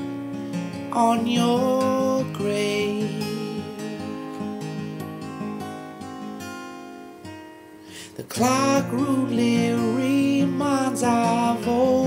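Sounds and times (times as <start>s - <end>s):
acoustic guitar strumming: 0.0s - 12.0s
man singing: 0.9s - 4.2s, 8.0s - 12.0s.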